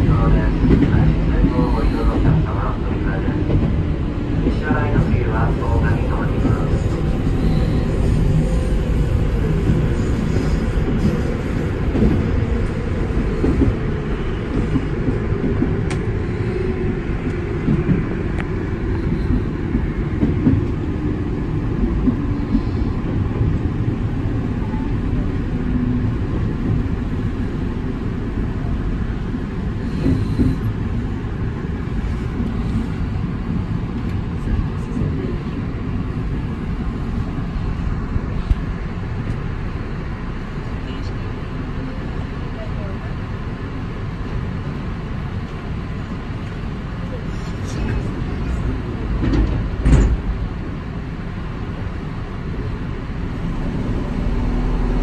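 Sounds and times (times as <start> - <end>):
wheels rumbling on rail: 0.0 - 55.0.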